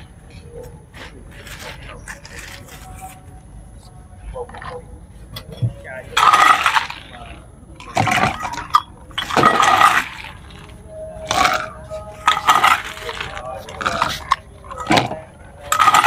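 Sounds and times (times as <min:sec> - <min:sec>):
dishes clinking: 0:07.8 - 0:16.0.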